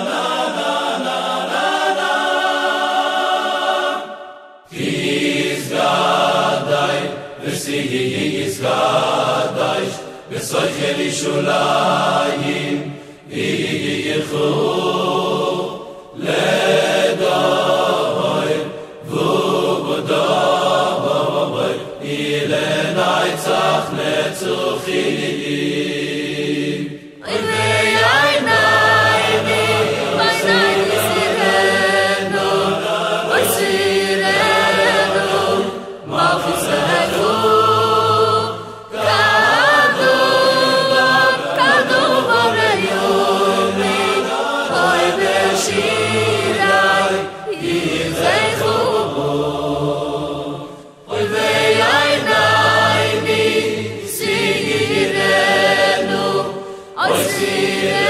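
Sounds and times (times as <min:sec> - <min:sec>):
choral singing: 0:00.0 - 0:58.0.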